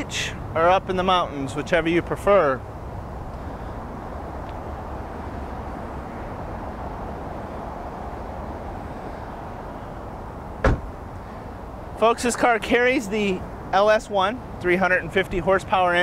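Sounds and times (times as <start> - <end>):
outdoor background noise: 0.0 - 16.0
sharp thump: 10.6 - 10.9.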